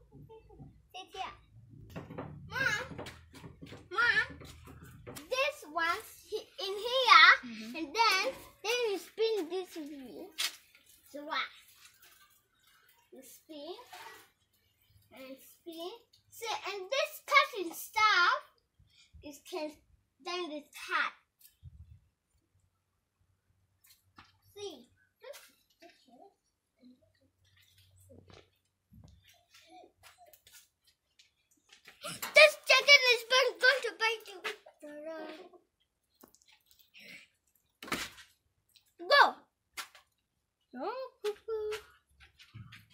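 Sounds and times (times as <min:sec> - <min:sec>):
young girl talking: 0:00.3 - 0:01.4, 0:02.5 - 0:03.0, 0:03.9 - 0:04.5, 0:05.2 - 0:10.4, 0:11.1 - 0:11.6, 0:13.1 - 0:14.3, 0:15.1 - 0:18.6, 0:19.2 - 0:21.3, 0:24.5 - 0:27.0, 0:32.0 - 0:35.6, 0:39.0 - 0:39.5, 0:40.7 - 0:41.8.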